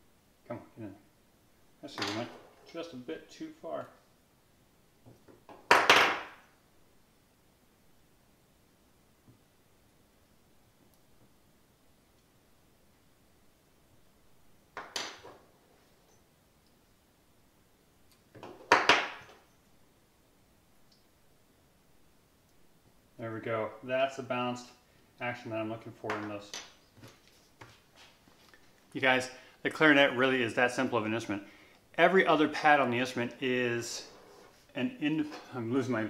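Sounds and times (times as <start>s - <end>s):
soft rustle: 15.4s - 16.9s, 26.8s - 29.0s, 33.9s - 35.6s.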